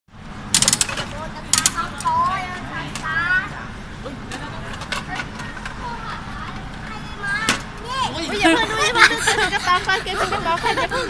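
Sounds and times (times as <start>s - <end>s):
shop background noise: 0.1s - 11.0s
vending machine crank clicks: 0.5s - 2.1s
faint voices: 1.2s - 11.0s.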